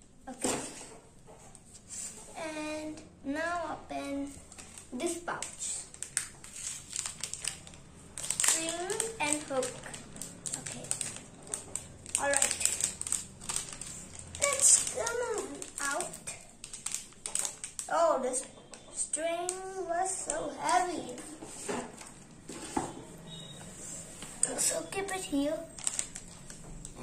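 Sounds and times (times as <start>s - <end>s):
child's voice: 0.3s - 0.8s, 2.3s - 5.9s, 8.4s - 11.1s, 12.2s - 13.0s, 14.3s - 16.5s, 17.8s - 21.4s, 24.4s - 25.8s
plastic pouches crinkling: 4.4s - 22.6s, 24.4s - 27.0s.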